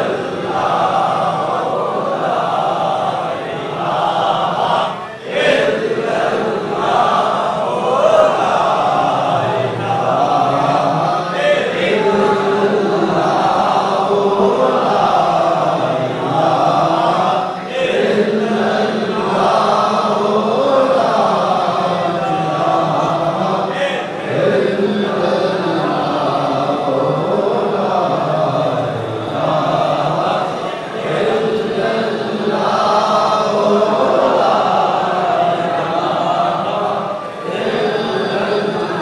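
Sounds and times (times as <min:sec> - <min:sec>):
men chanting together: 0:00.0 - 0:39.0.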